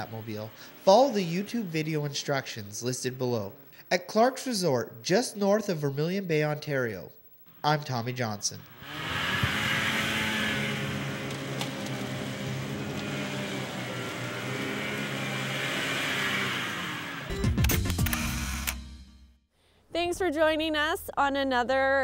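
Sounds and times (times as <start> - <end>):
vehicle engines whining: 0.0 - 3.8, 8.7 - 17.4
music: 17.3 - 19.4.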